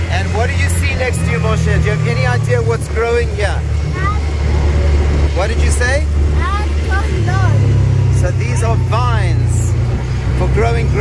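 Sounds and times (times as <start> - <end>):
buggy engine running: 0.0 - 11.0.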